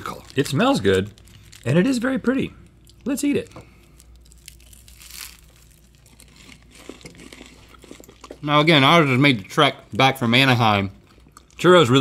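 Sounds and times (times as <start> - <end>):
paper crinkling: 0.0 - 2.2
crunchy bites and chewing: 3.6 - 8.5.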